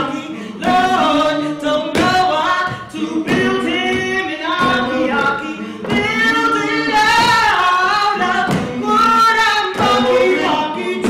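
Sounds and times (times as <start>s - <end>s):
voices singing in harmony: 0.0s - 11.0s
woman singing unaccompanied: 0.0s - 11.0s.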